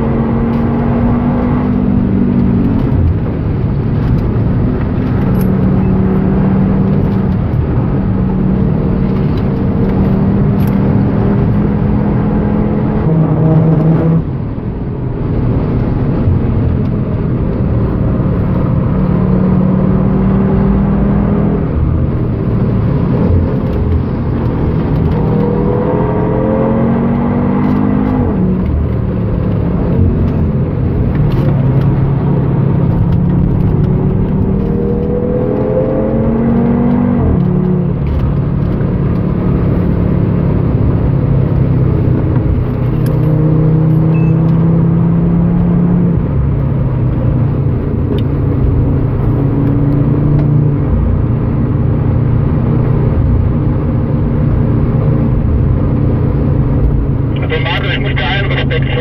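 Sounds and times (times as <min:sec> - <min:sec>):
car engine revving: 0:00.0 - 0:59.0
road and wind noise: 0:00.0 - 0:59.0.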